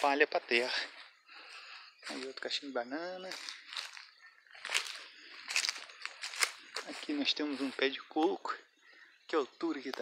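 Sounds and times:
footsteps crunching on dry leaves: 0:00.0 - 0:08.4.

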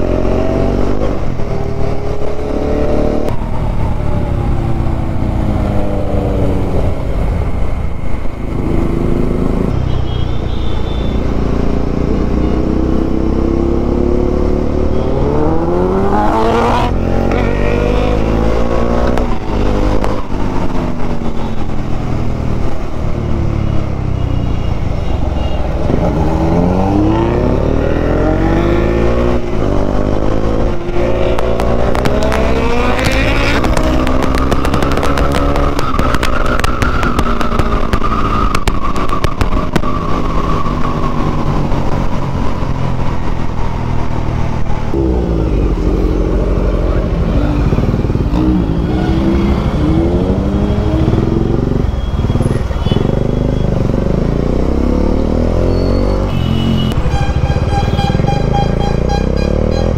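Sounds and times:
motorcycle engine revving: 0:00.0 - 0:07.6, 0:11.4 - 0:22.7, 0:25.2 - 0:59.9.

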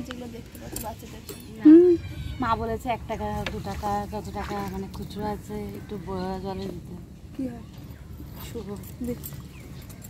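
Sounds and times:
woman's voice: 0:00.0 - 0:07.8
steady low rumble: 0:01.7 - 0:09.8
handbag clicks while rummaging: 0:08.8 - 0:10.0.

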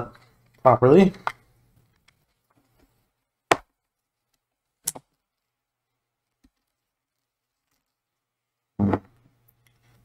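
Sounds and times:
sharp knocks on laptop chassis: 0:03.5 - 0:03.7.

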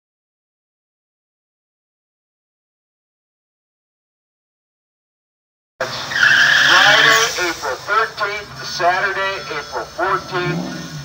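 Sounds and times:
car tyres squealing: 0:05.8 - 0:07.7, 0:09.2 - 0:11.0
man talking over public address: 0:06.5 - 0:11.0.

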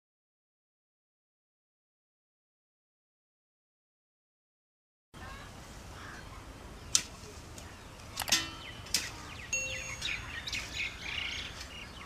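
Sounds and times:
birds chirping: 0:05.2 - 0:12.0.

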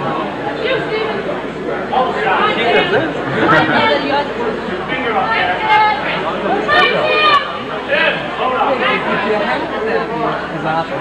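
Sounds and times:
chatter of many voices: 0:00.0 - 0:11.0.

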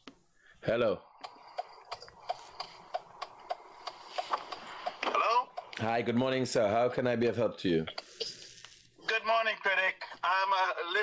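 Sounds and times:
steady ticking: 0:01.0 - 0:06.8.

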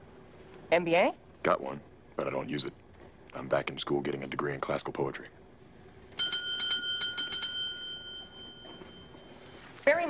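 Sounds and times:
small bell trilling: 0:06.2 - 0:09.4.

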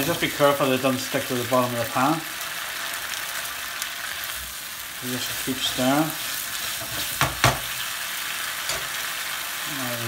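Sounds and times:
rice hissing in pan: 0:00.0 - 0:10.0
spatula stirring: 0:05.2 - 0:07.8.

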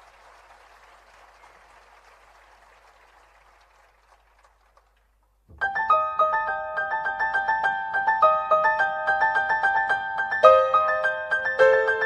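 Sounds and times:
faint scattered applause: 0:00.0 - 0:05.5.

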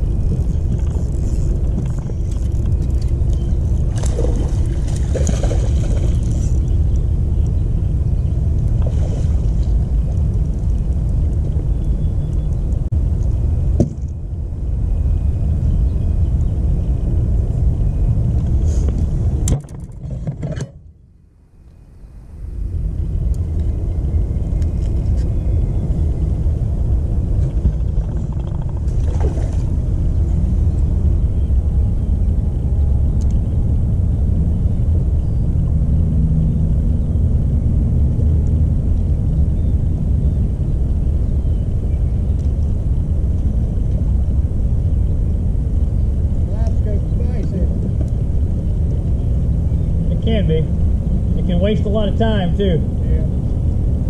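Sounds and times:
wind buffeting microphone: 0:00.0 - 0:20.4, 0:22.5 - 0:54.0.

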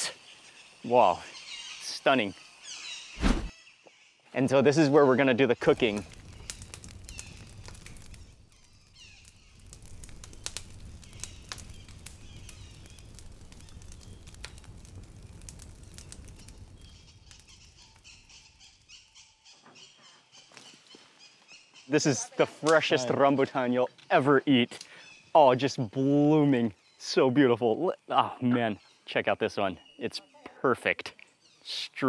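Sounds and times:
sharp clicks and crackles: 0:05.6 - 0:19.1.

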